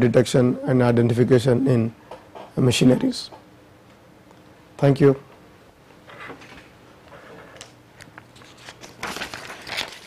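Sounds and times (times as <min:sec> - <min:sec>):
paper rustling and shuffling: 0:07.4 - 0:10.0.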